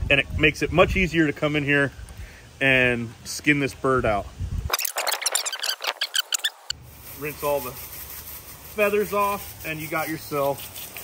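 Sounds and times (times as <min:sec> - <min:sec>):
crackling squeaks: 0:04.7 - 0:09.0.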